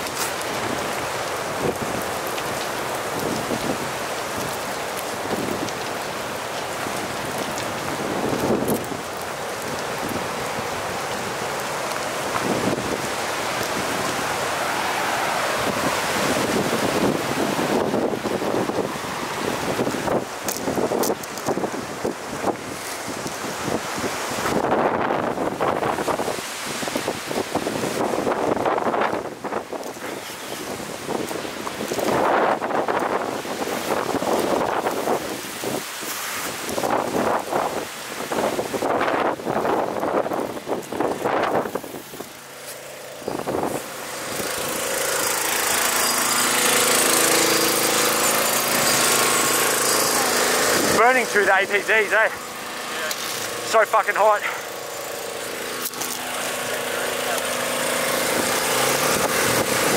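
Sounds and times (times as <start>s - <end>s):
wind buffeting microphone: 0.0s - 42.5s, 43.1s - 59.9s
bushfire rushing and crackling: 0.0s - 59.9s
loud hiss: 41.8s - 59.9s
small engine running: 42.3s - 59.9s.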